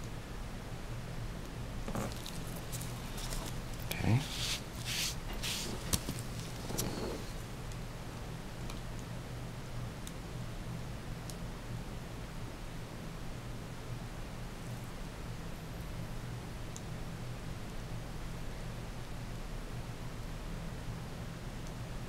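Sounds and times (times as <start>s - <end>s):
low hum with hiss: 0.0s - 22.0s.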